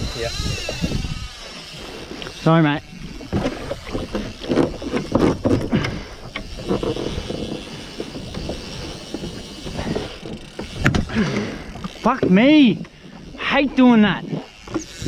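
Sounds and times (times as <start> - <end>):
water splashing against boat hull: 3.0 - 6.0.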